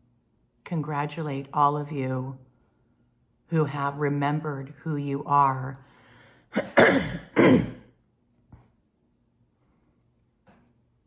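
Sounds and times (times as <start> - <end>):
woman coughing: 6.5 - 7.9.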